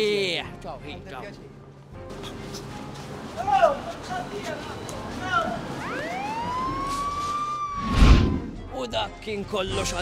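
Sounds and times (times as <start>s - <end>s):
rising wail: 5.8s - 8.5s.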